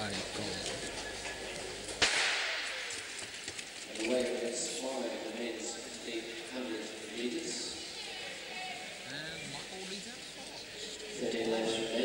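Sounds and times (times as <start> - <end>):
starter's pistol crack echoing: 2.0 - 3.0.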